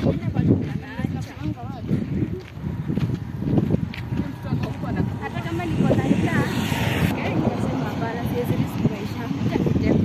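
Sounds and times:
people talking: 0:00.0 - 0:02.5, 0:04.0 - 0:10.0
roadside noise: 0:00.0 - 0:10.0.

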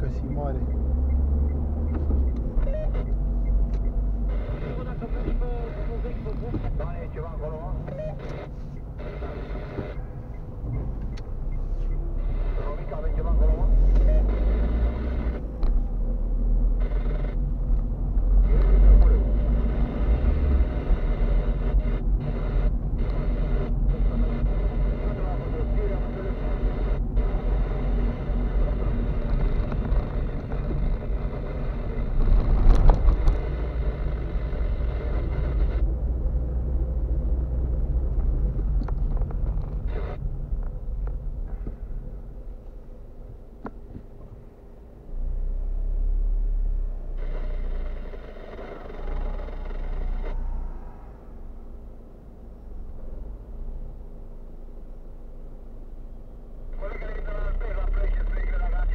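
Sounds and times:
road and engine rumble inside car: 0:00.0 - 0:58.9.

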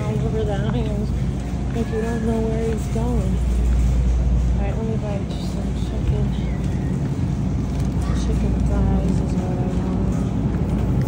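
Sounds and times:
faint shoppers' voices: 0:00.0 - 0:11.0
steady low hum: 0:00.0 - 0:11.0.

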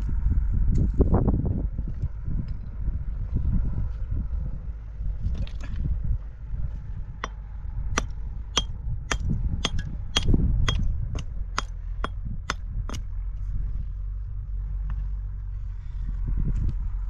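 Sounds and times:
low rumble: 0:00.0 - 0:17.0
hammer striking stone: 0:08.0 - 0:10.8.

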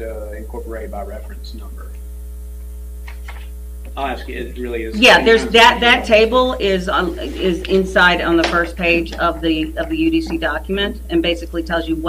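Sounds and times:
faint voice murmuring: 0:00.0 - 0:01.9, 0:04.0 - 0:11.1
electrical mains hum: 0:00.0 - 0:12.0.

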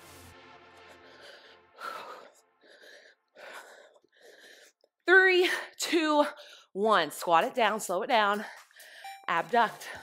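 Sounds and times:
woman breathing hard: 0:00.8 - 0:04.9.

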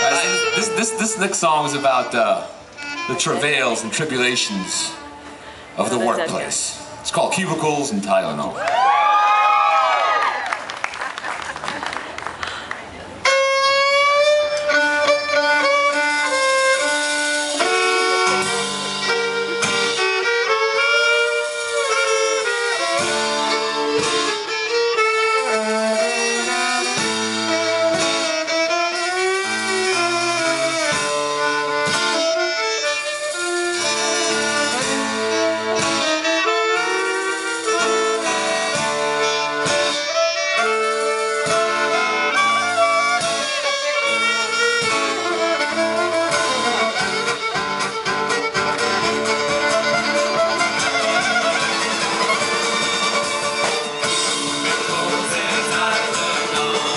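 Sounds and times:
clarinet: 0:00.0 - 0:06.2, 0:13.2 - 0:56.9
electric bass: 0:00.0 - 0:07.1, 0:13.0 - 0:56.9
fiddle melody: 0:00.0 - 0:08.4, 0:13.1 - 0:56.9
drum kit steady beat: 0:15.6 - 0:56.9
strummed acoustic guitar: 0:40.6 - 0:56.9.

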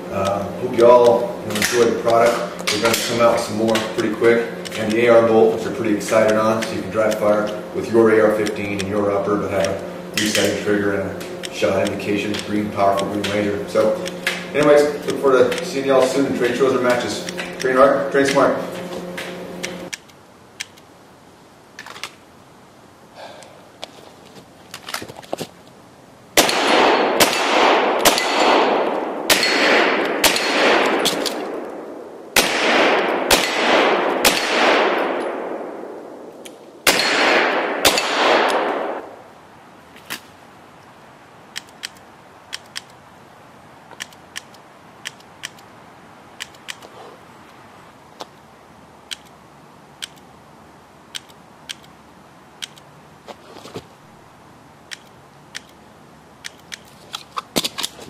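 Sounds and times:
pistol shots echoing: 0:26.4 - 0:39.2
light clicks: 0:43.9 - 0:45.7, 0:49.1 - 0:49.4, 0:54.9 - 0:55.8.

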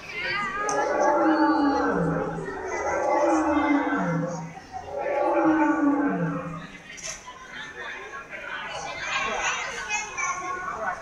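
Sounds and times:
children's voices: 0:00.0 - 0:11.0
dinosaur roar through speaker: 0:00.6 - 0:06.8.

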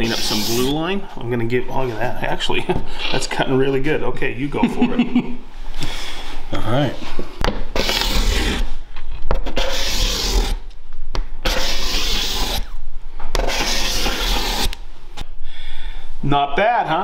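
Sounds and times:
cabinet scraper scraping wood: 0:00.0 - 0:00.8, 0:07.8 - 0:08.7, 0:09.4 - 0:10.6, 0:11.4 - 0:12.7, 0:13.4 - 0:14.8.

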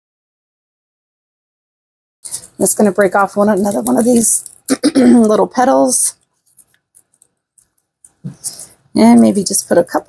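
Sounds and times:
dried petals crackling: 0:02.3 - 0:10.0.

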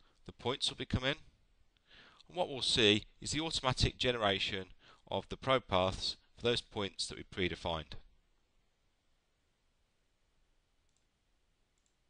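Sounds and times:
computer mouse clicks: 0:10.9 - 0:11.1, 0:11.8 - 0:12.0.

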